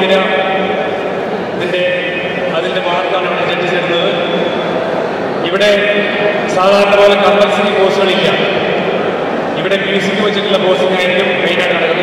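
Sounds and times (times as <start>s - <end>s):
man speaking: 0.0s - 0.9s, 1.6s - 4.6s, 5.4s - 8.8s, 9.6s - 12.0s.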